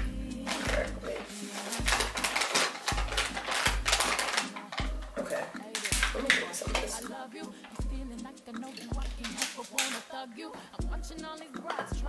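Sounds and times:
background music with bass beat: 0.0 - 9.8, 10.8 - 12.0.

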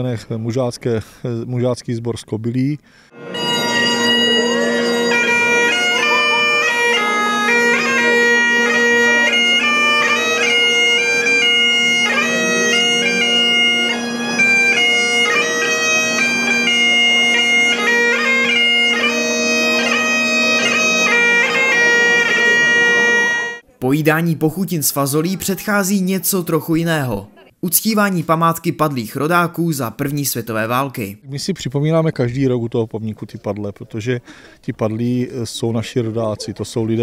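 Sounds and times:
bagpipe drones: 3.0 - 23.6
bagpipe chanter melody: 3.1 - 23.6.

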